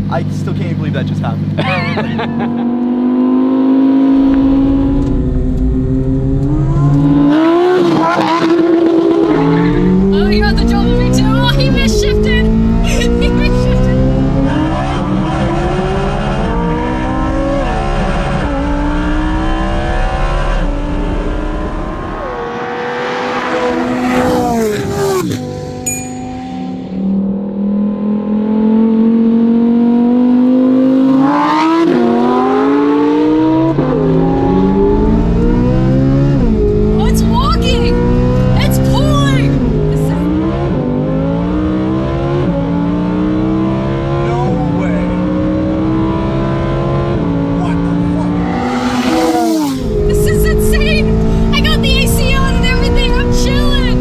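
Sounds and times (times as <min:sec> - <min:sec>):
car engines accelerating hard: 0:00.0 - 0:25.8, 0:26.4 - 0:54.0.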